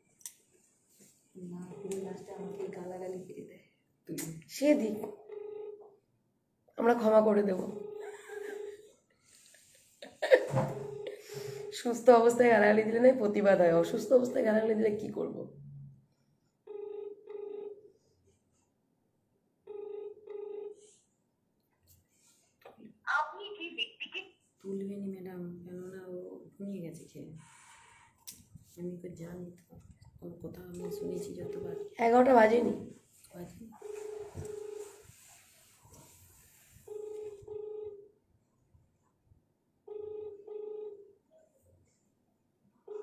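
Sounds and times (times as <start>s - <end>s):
telephone ringback tone: 1.4s - 3.2s, 5.0s - 5.9s, 7.5s - 8.9s, 10.5s - 12.3s, 16.7s - 18.0s, 19.6s - 21.0s, 30.7s - 32.8s, 33.8s - 35.1s, 36.9s - 38.1s, 39.9s - 41.2s.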